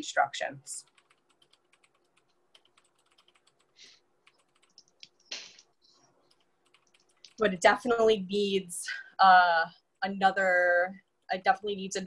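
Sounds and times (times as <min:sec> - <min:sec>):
light keyboard typing: 0:00.8 - 0:07.6.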